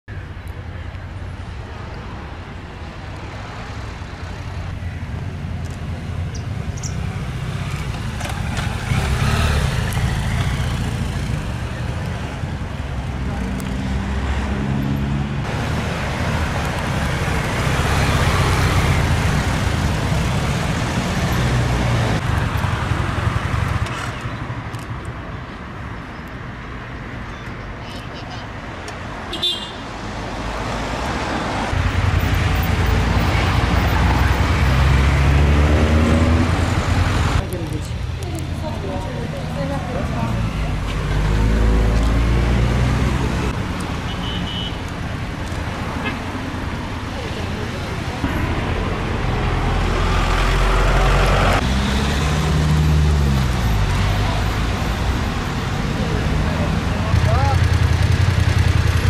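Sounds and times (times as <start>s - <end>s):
cars passing: 0.4s - 59.0s
motorcycle engine passing by: 7.0s - 11.5s.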